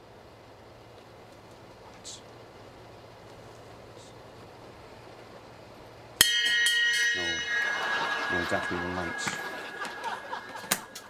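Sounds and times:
lingering ringing tone: 0:06.2 - 0:11.0.

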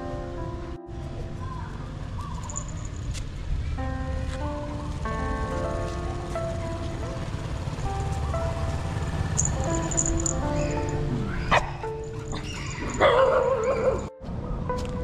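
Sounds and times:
background music: 0:00.0 - 0:01.8, 0:03.6 - 0:15.0
dog barking: 0:11.3 - 0:14.1.

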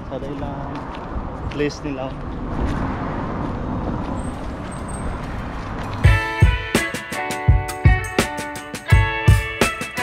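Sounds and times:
street background rush: 0:00.0 - 0:10.0.

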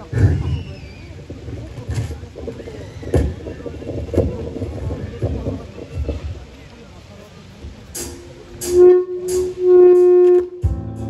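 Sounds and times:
drum kit deep thuds: 0:07.9 - 0:11.0.

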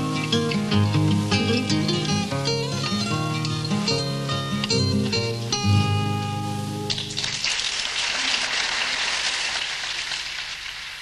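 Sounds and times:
guitar chord: 0:00.0 - 0:07.1
audience applauding: 0:07.0 - 0:11.0.

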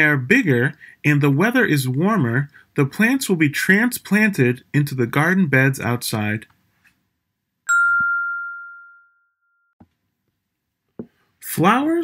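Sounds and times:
bell-like ding: 0:07.7 - 0:09.8.

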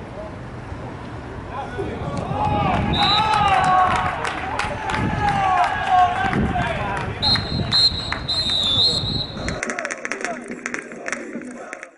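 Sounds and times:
players shouting: 0:02.2 - 0:09.7.

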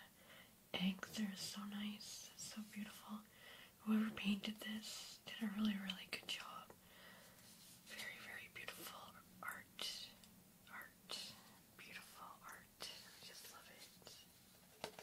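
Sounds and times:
person whispering: 0:00.8 - 0:06.8, 0:07.9 - 0:14.3.

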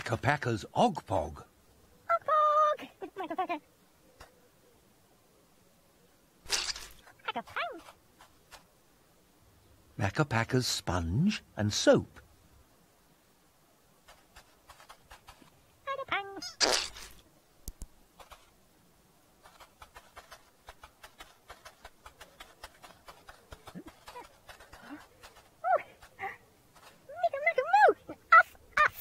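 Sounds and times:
plastic toy clicks and rattles: 0:19.4 - 0:25.5.

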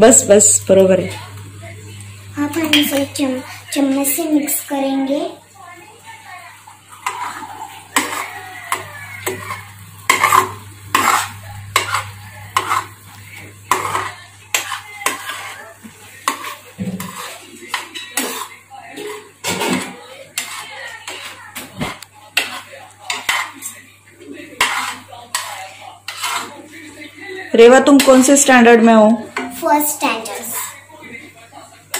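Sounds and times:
steel spoon scraping metal pan: 0:07.0 - 0:23.8, 0:24.6 - 0:26.8.

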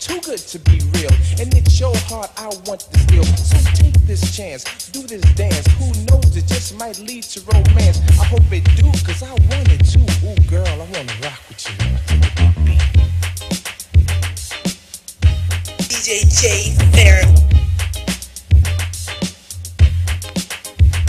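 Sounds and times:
rapping over drums and bass: 0:00.0 - 0:21.0.

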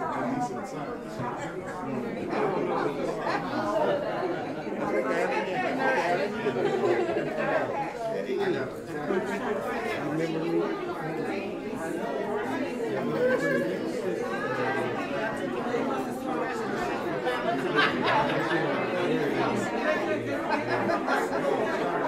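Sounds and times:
chatter of many people: 0:00.0 - 0:22.0.

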